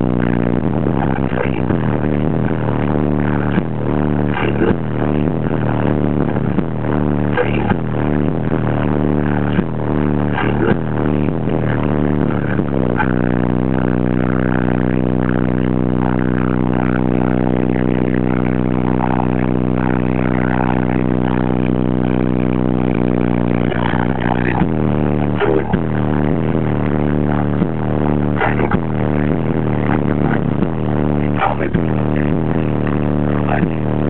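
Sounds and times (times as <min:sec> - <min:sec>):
bass-heavy song through car speakers: 0:00.0 - 0:34.0.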